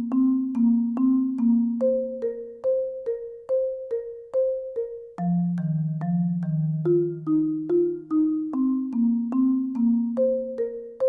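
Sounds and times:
marimba notes: 0.0 - 11.0.

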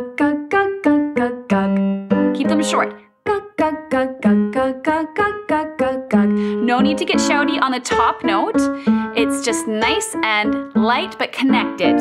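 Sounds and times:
piano accompaniment: 0.0 - 12.0
woman singing staccato syllables: 0.0 - 12.0.

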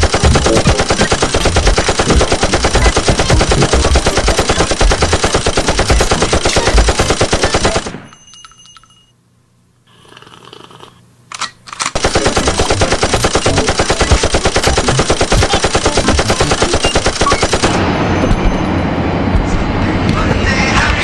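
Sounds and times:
rapid rattle of sharp hits: 0.0 - 8.2.

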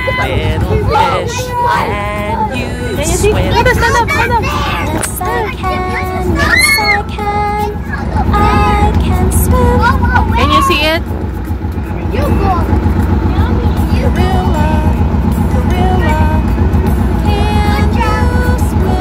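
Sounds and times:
children's sing-along music: 0.0 - 11.0, 13.7 - 19.0
vehicle engine rumbling: 0.0 - 19.0
voices: 0.0 - 19.0.

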